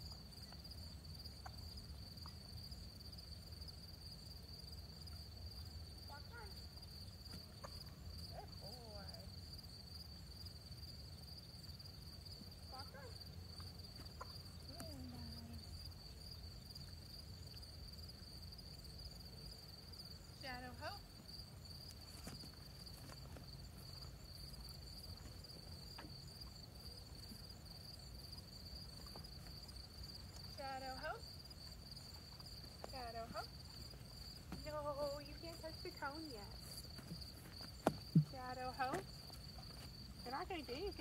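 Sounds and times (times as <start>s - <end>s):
crickets chirping: 0.0s - 41.0s.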